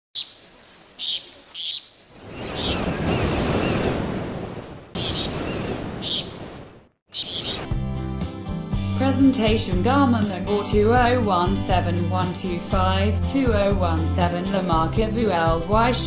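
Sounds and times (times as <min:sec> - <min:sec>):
birds chirping: 0:00.2 - 0:04.0, 0:04.9 - 0:07.8
ocean surf washing: 0:00.5 - 0:07.5
music: 0:07.5 - 0:16.0.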